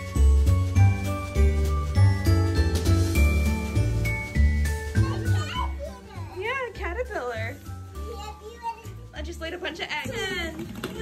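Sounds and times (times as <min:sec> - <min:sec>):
background music with bass: 0:00.0 - 0:06.2.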